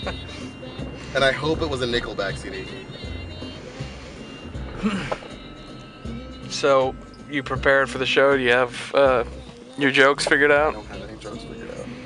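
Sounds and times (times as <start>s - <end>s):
car driving rumble: 0.0s - 12.0s
quiet music: 0.0s - 12.0s.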